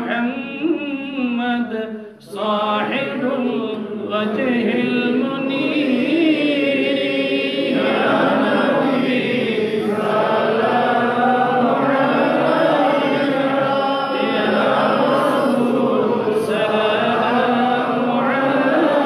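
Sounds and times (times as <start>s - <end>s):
man chanting recitation: 0.0s - 19.0s.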